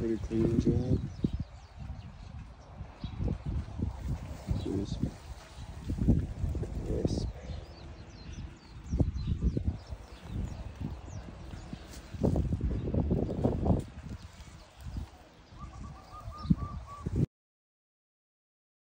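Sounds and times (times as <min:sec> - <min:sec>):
small birds chirping: 0:00.0 - 0:17.2
repeated bird notes: 0:00.0 - 0:17.3
wind gusting across microphone: 0:00.0 - 0:17.3.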